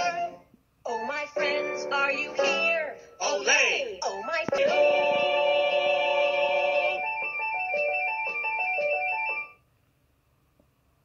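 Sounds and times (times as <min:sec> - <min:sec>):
electronic jingle: 0:04.6 - 0:09.6.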